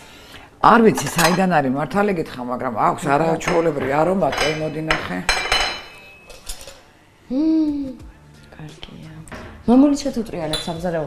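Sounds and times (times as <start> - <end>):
kitchen containers and utensils clinking: 1.0 - 1.6, 3.4 - 6.9
woman talking: 7.4 - 11.0.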